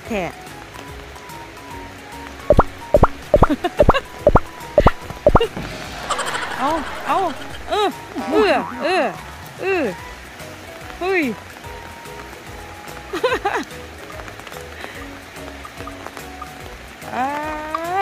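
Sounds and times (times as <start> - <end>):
quiet background music: 0.0 - 18.0.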